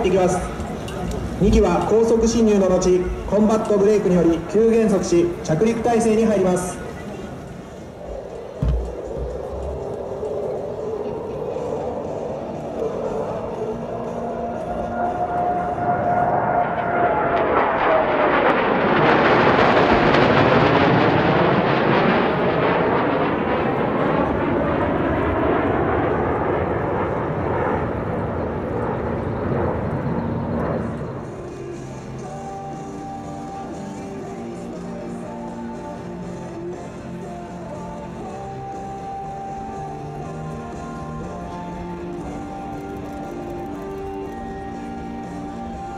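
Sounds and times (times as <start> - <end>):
jet whine dropping in pitch: 0.0 - 36.0, 37.3 - 45.9
faint music: 0.0 - 45.9
jet engines roaring past: 0.0 - 45.9.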